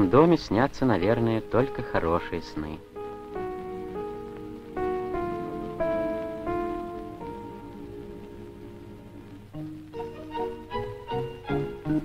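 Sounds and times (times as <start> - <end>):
slow melody of held notes: 0.0 - 12.0.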